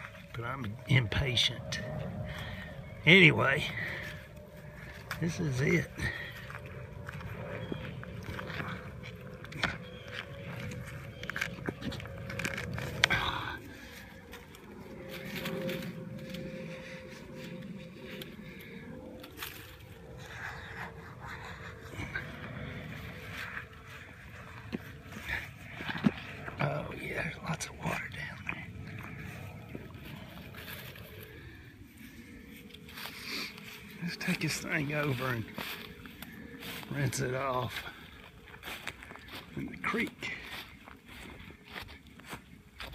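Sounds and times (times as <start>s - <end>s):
dry stems snapping: 8.0s - 17.0s.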